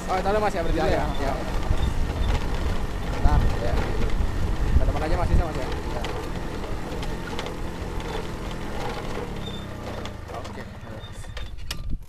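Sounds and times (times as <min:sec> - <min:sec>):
wind buffeting microphone: 0:00.0 - 0:09.9, 0:11.0 - 0:12.0
motorcycle engine rumble: 0:00.0 - 0:12.0.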